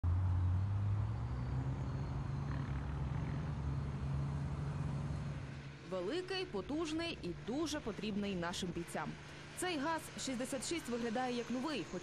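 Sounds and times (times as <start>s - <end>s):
truck engine droning: 0.0s - 12.0s.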